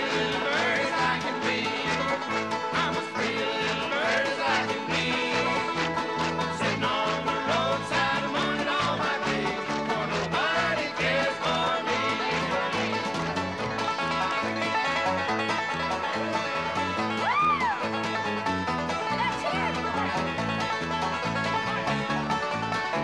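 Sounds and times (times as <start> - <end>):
banjo picking: 0.0 - 23.0
guitars picking: 0.0 - 23.0.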